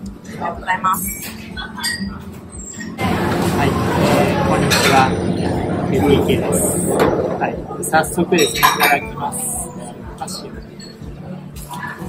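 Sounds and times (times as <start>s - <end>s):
short high-pitched squeaks: 1.0s - 3.0s.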